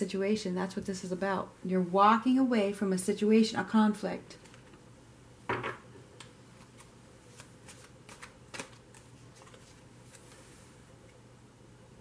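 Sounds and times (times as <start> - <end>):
cards shuffling: 6.6 - 10.6.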